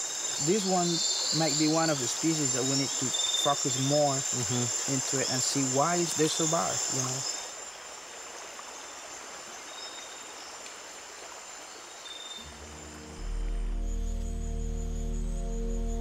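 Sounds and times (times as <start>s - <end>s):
insects trilling: 0.0s - 16.0s
soft steady hiss: 0.0s - 16.0s
low music drone: 12.4s - 16.0s.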